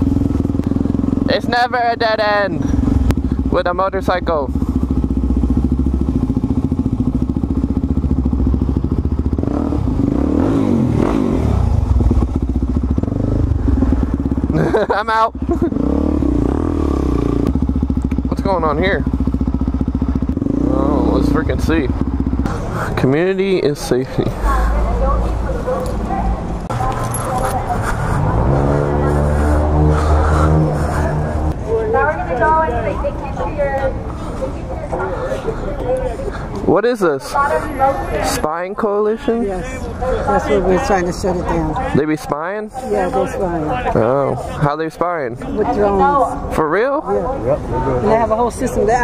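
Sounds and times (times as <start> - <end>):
motorcycle engine running: 0.0 - 33.0
voices: 0.0 - 49.0.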